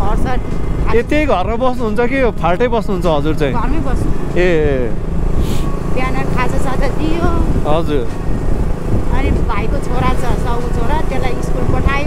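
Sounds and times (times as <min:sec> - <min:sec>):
motorcycle engine running: 0:00.0 - 0:12.0
road and wind rumble: 0:00.0 - 0:12.0
voices talking: 0:00.0 - 0:12.0.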